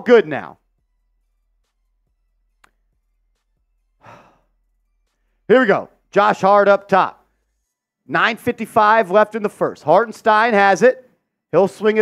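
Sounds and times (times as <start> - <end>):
man sighing: 4.0 - 4.5.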